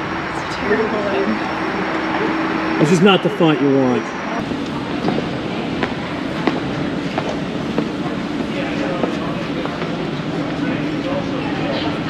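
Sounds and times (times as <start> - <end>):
indoor arena rumble: 0.0 - 12.0.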